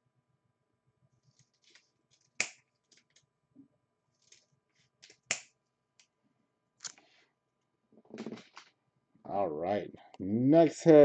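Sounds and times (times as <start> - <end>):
cards rustling: 1.2 - 3.3, 4.1 - 5.5.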